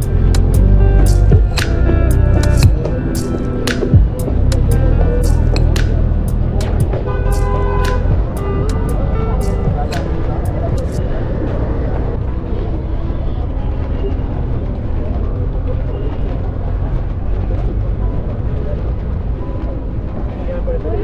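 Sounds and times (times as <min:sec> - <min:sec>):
sharp clicks: 0:00.0 - 0:09.0
music: 0:00.0 - 0:21.0
traffic rumble: 0:00.0 - 0:21.0
voices: 0:00.0 - 0:21.0.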